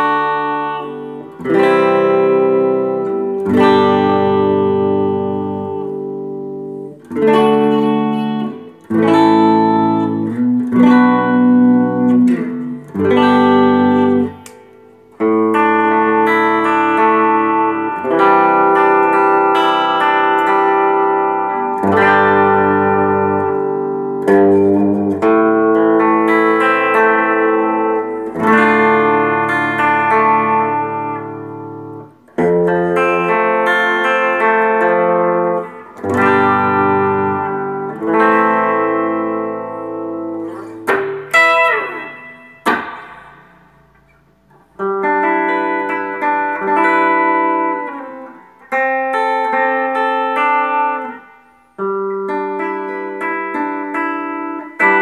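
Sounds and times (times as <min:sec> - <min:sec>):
electric guitar chords and phrases: 0:00.0 - 0:55.0
slide down guitar strings: 0:40.3 - 0:44.3.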